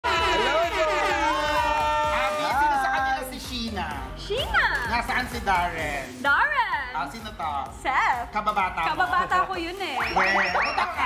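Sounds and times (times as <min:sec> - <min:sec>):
people whooping and cheering: 0:00.0 - 0:03.3, 0:10.0 - 0:11.0.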